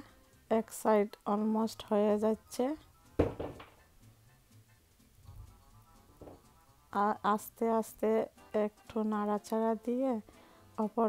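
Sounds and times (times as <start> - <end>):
faint background music: 0.0 - 11.0
sharp thump: 3.2 - 3.8.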